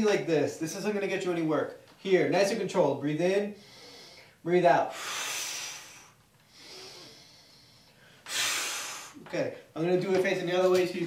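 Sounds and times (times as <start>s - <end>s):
man breathing hard: 3.6s - 9.2s.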